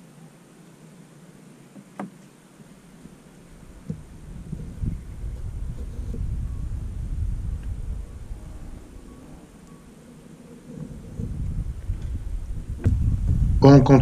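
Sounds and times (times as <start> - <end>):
wind buffeting microphone: 3.4 - 14.0.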